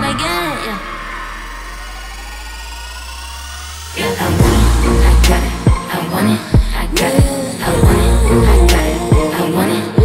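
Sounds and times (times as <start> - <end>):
held low bass note: 0.0 - 6.0
rising whining tones: 0.0 - 8.7
pop music beat: 0.0 - 10.0.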